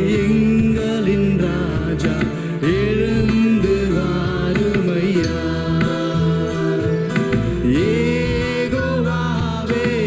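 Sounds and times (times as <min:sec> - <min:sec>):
bass guitar: 0:00.0 - 0:10.0
keyboard: 0:00.0 - 0:10.0
person singing: 0:00.0 - 0:10.0
cajon hits: 0:01.8 - 0:08.7.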